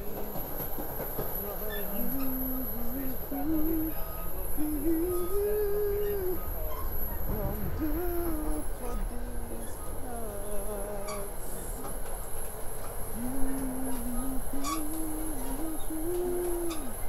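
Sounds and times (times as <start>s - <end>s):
train carriage rumble: 0.0s - 17.0s
man humming: 2.0s - 6.5s, 7.3s - 9.6s, 13.2s - 17.0s.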